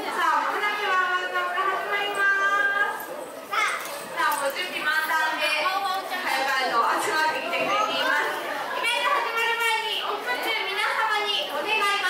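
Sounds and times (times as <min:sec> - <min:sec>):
children talking: 0:00.0 - 0:12.0
visitors chattering: 0:00.0 - 0:12.0.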